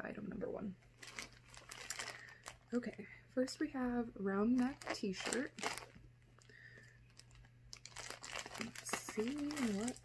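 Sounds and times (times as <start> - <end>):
low steady hum: 0.0 - 10.0
plastic bag handling noise: 1.0 - 3.0, 4.5 - 10.0.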